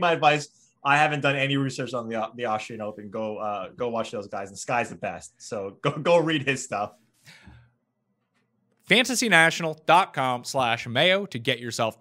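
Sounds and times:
man talking: 0:00.0 - 0:07.0, 0:08.8 - 0:12.0.

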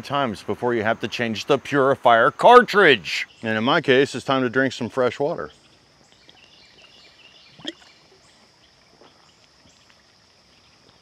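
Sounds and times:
faint bird chirps: 0:05.4 - 0:11.0
person swallowing water: 0:07.6 - 0:07.9.

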